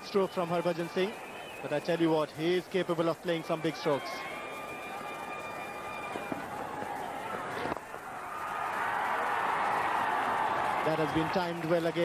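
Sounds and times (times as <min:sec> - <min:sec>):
stadium crowd: 0:00.0 - 0:12.0
crowd roar: 0:03.4 - 0:12.0.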